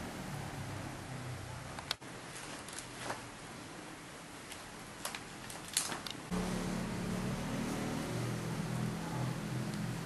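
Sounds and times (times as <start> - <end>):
paper rustles and clicks: 2.3 - 3.3, 5.0 - 6.2
steady low motor hum: 6.2 - 10.0.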